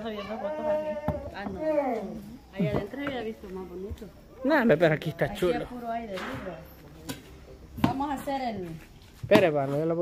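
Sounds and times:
conversation: 0:00.0 - 0:10.0.

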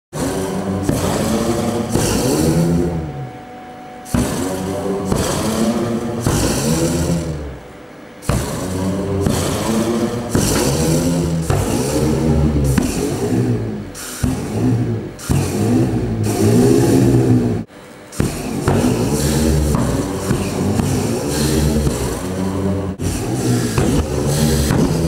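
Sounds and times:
hissing roar of flames: 0:00.2 - 0:03.1, 0:04.1 - 0:07.6, 0:08.2 - 0:25.0
flame organ low wavering notes: 0:00.2 - 0:17.7.

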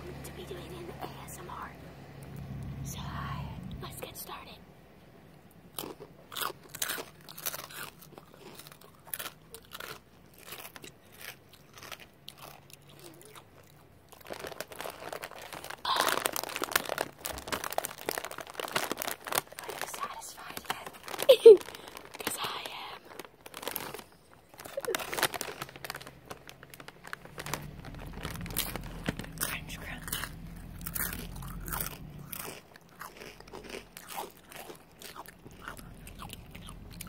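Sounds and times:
chewing crunchy food: 0:05.7 - 0:37.0.

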